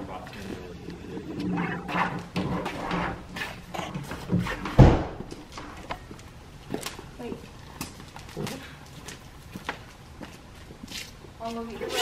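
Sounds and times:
heavy thump: 4.3s - 5.4s.

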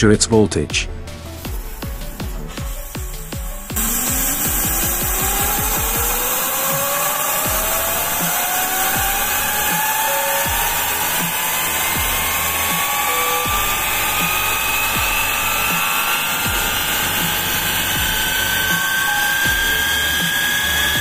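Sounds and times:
turbine whine rising in pitch: 1.1s - 21.0s
steam hissing: 1.2s - 21.0s.

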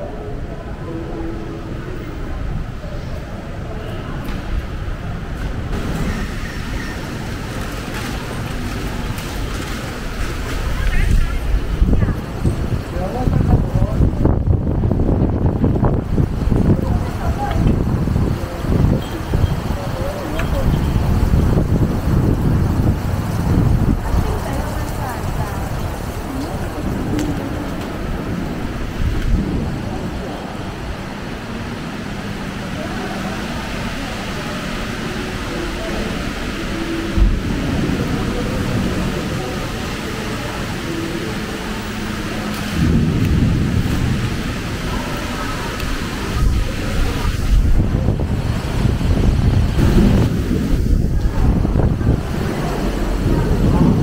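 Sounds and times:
indistinct voices in hall: 0.0s - 54.0s
road traffic: 0.0s - 54.0s
wind on microphone: 4.3s - 32.4s, 34.8s - 54.0s.

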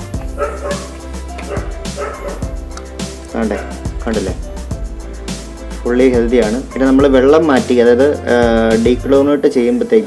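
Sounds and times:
dog yipping: 0.3s - 2.6s.

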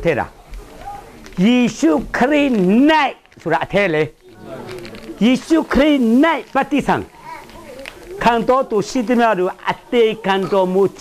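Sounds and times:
man speaking: 1.4s - 7.5s, 8.1s - 11.0s.

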